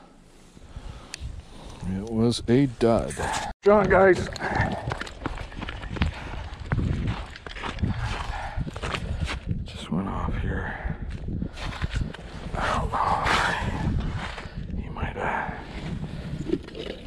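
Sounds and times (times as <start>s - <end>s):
wind buffeting microphone: 0.7s - 17.0s
footsteps on snow: 4.8s - 9.5s.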